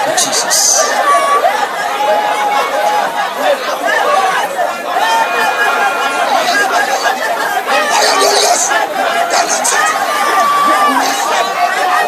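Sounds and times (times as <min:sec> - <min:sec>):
congregation praying aloud: 0:00.0 - 0:12.0.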